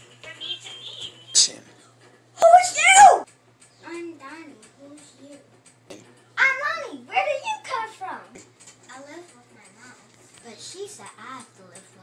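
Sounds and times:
child wailing: 2.4 - 3.2.

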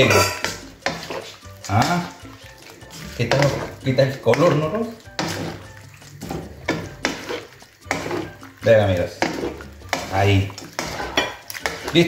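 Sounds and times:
wooden spoon stirring in a wok: 0.0 - 12.0.

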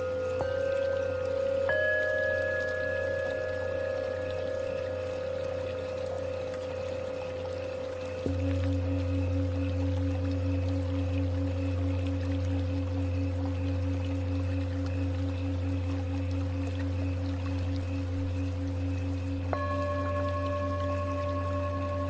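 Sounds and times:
low steady drone: 0.0 - 22.0
singing bowl tones: 0.0 - 22.0.

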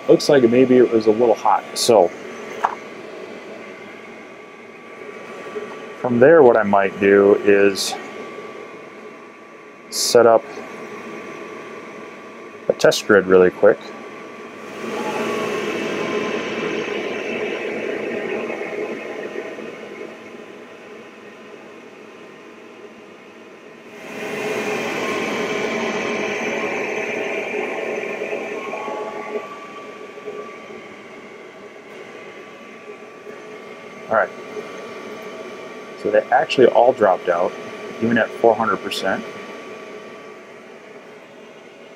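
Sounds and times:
fan hum: 0.0 - 41.9
laser head mechanical whirring: 12.9 - 21.4, 23.9 - 41.6.

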